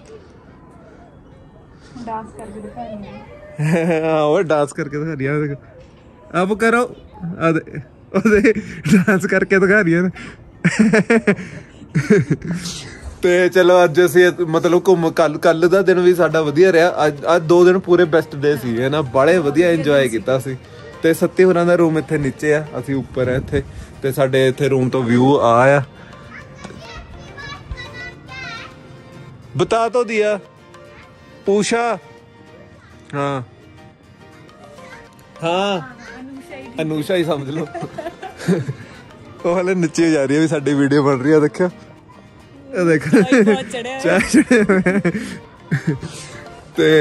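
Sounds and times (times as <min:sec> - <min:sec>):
distant children calling and playing: 0:00.0 - 0:47.0.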